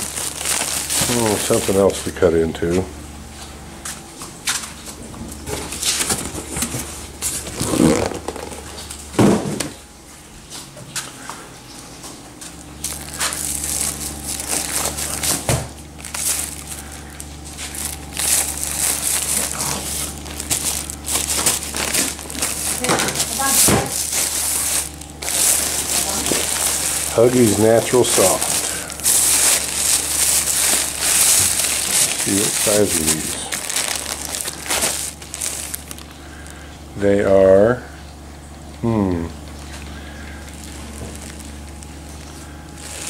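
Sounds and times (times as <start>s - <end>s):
plastic bag crinkling: 0.0s - 2.7s, 5.5s - 9.7s, 12.4s - 36.8s, 39.4s - 43.0s
scissors cutting plastic: 17.6s - 36.1s.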